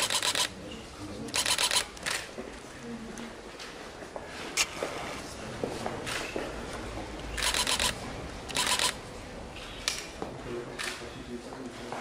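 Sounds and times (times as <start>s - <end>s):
camera shutter bursts: 0.0s - 0.6s, 1.3s - 2.2s, 7.4s - 9.0s.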